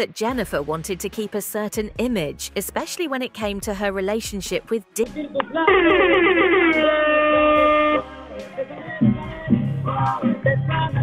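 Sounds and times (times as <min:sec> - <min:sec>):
person holding a high note: 0:05.6 - 0:08.1.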